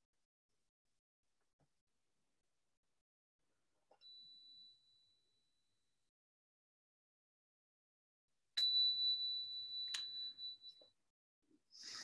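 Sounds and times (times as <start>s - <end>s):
small bell ringing: 8.6s - 10.9s.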